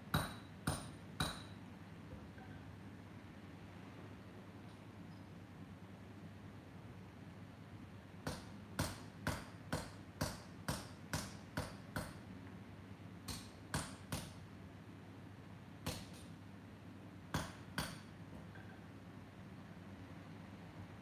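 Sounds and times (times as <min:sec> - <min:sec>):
hammer striking metal on anvil: 0:00.1 - 0:01.6, 0:08.3 - 0:12.2, 0:17.3 - 0:18.2.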